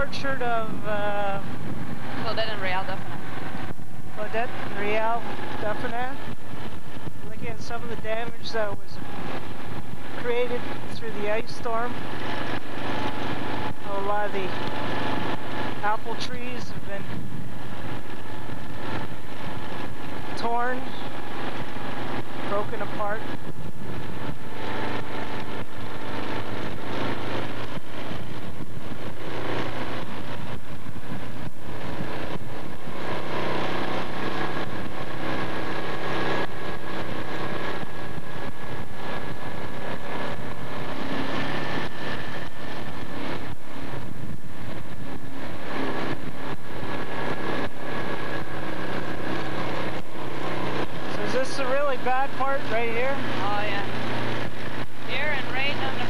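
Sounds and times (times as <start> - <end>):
vehicle engine running: 0.0 - 56.0.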